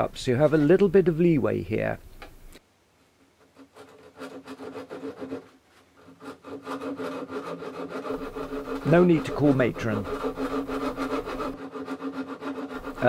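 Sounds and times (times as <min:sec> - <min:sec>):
fret saw cutting guitar wood: 0:06.1 - 0:13.0.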